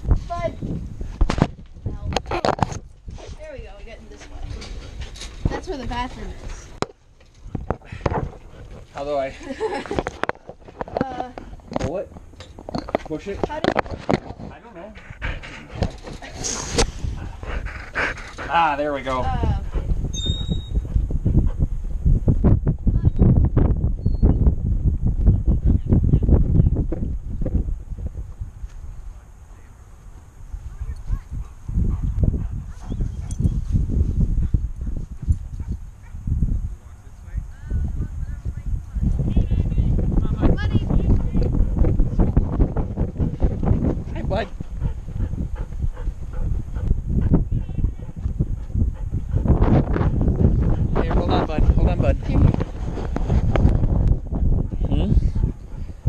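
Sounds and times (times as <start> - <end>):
camera thumping and rubbing: 0.0 - 3.5, 4.1 - 9.0, 9.8 - 14.6, 15.3 - 17.4, 40.0 - 56.0
wind buffeting microphone: 0.0 - 56.0.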